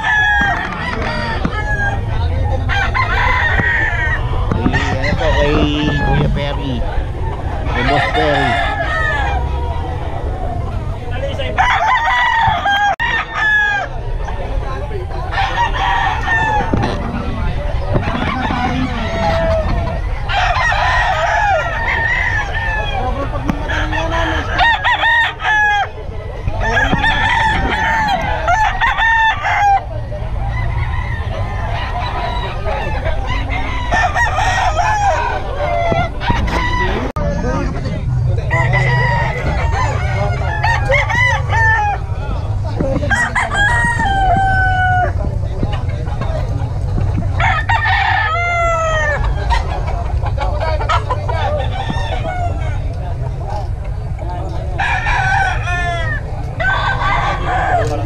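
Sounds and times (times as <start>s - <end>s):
low background din: 0.0s - 58.0s
roosters crowing: 0.0s - 58.0s.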